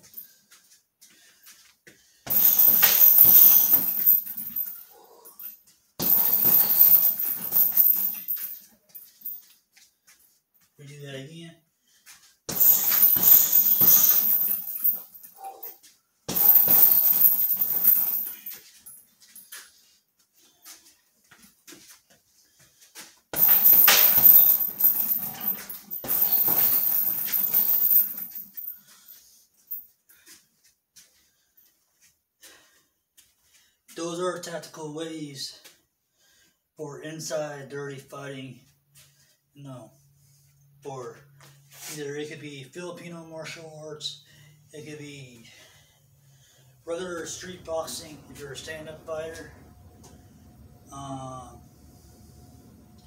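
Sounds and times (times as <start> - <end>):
heavy bag knocking and rattling: 2.3 - 4.8, 6.0 - 8.6, 12.5 - 15.2, 16.3 - 19.0, 23.4 - 28.7
punches hitting heavy bag: 6.0 - 8.2, 12.5 - 15.0, 16.3 - 18.3.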